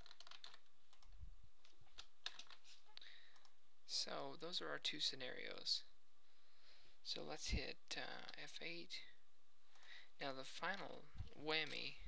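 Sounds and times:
computer keyboard and mouse clicks: 0:00.0 - 0:02.6.

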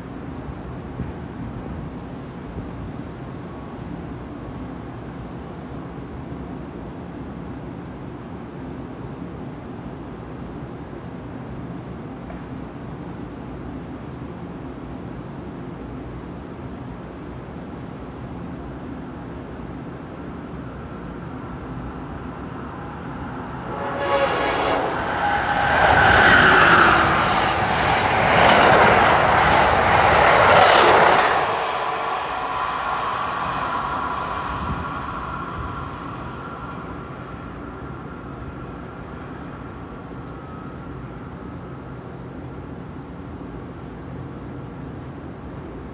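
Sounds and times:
train passing at speed: 0:00.0 - 0:45.9.

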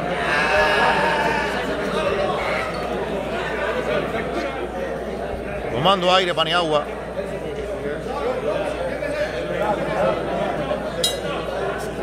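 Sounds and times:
murmur of hall: 0:00.0 - 0:12.0.

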